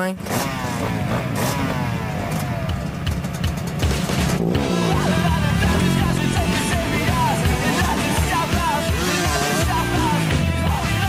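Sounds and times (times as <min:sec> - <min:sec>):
background music: 0:00.0 - 0:11.0
dirt bike engine running: 0:00.0 - 0:11.0.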